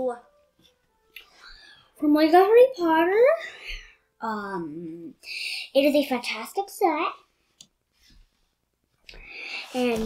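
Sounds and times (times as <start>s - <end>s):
boy speaking: 4.2s - 7.2s, 9.7s - 10.0s.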